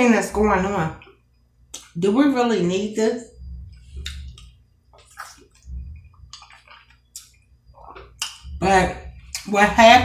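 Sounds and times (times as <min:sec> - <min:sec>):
wet chewing and mouth smacks: 0:03.7 - 0:08.6.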